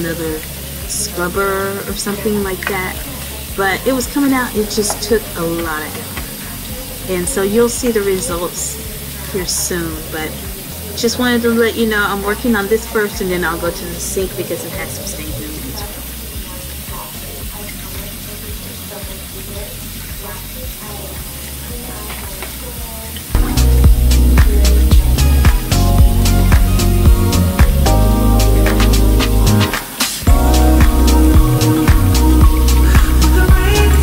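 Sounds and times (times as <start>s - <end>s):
loud music with steady beat: 0.0s - 11.0s, 12.6s - 34.0s
faucet running into steel sink: 0.0s - 25.8s.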